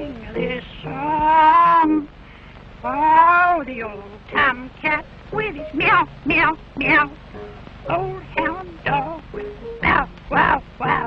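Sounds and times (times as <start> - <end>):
cartoon voice animal-like calls: 9.8 - 11.0.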